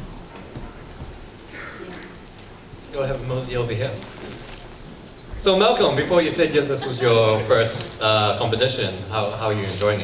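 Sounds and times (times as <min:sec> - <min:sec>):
low murmur of hall: 0:00.0 - 0:10.0.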